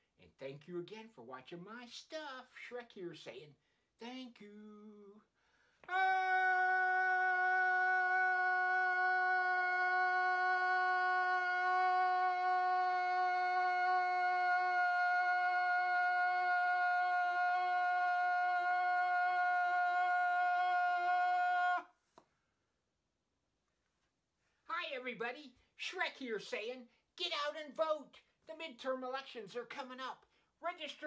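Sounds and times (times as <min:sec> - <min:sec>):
man holding a long note: 0:05.9 - 0:21.9.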